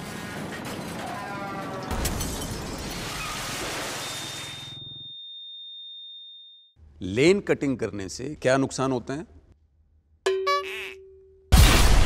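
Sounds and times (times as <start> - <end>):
high-pitched ringing tone: 4.6 - 6.8
crash impact: 11.5 - 12.0.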